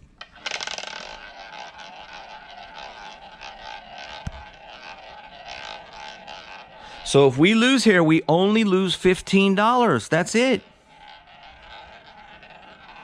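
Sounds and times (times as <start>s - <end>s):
roulette ball rolling: 0.0s - 13.0s.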